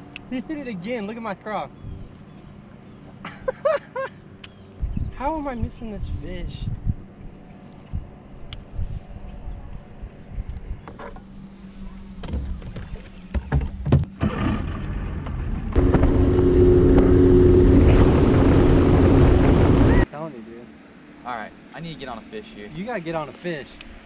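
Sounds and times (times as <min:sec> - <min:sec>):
boat motor humming: 0:00.0 - 0:05.4, 0:09.2 - 0:20.0.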